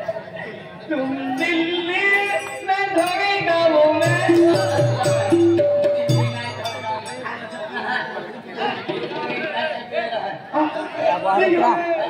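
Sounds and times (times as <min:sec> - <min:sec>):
stage band music: 0:03.8 - 0:07.7.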